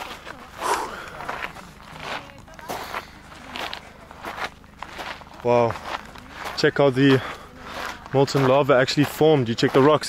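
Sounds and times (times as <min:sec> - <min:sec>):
faint voices: 0:00.0 - 0:10.0
footsteps crunching on gravel: 0:00.0 - 0:10.0.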